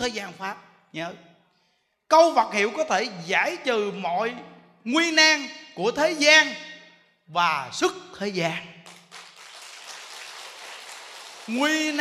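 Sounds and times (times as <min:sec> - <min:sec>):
audience applauding: 0:08.9 - 0:12.0.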